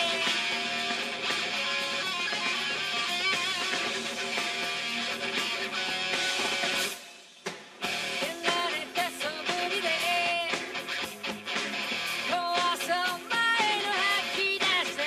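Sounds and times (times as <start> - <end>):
lead electric guitar bending notes: 0.0 - 6.8
heavy metal band playing: 0.0 - 7.1, 7.8 - 15.0.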